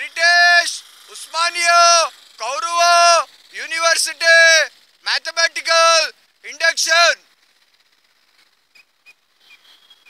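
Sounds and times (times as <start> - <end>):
thin whistle-like tone: 8.7 - 10.0.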